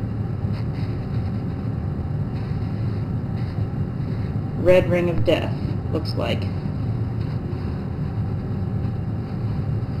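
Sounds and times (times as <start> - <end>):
small fan humming: 0.0 - 10.0.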